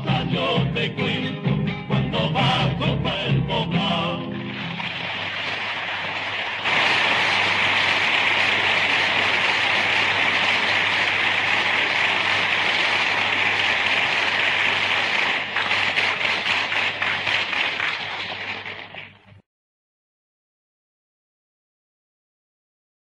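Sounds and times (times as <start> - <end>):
audience applause: 4.4 - 19.4.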